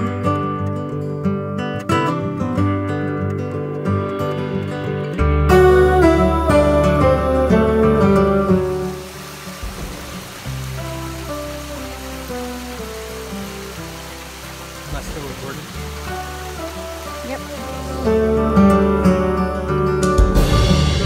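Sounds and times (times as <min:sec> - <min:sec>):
background music with held tones: 0:03.6 - 0:21.0
stream cascading over rocks: 0:05.5 - 0:20.8.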